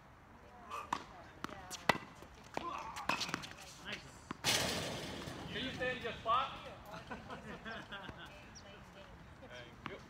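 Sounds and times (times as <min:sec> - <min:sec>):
tennis ball struck by racket: 0:00.9 - 0:03.6
tennis ball bouncing on court: 0:00.9 - 0:04.6.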